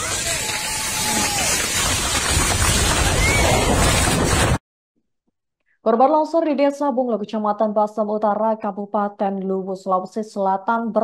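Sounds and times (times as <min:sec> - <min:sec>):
distant shouted voices: 0:00.0 - 0:01.8.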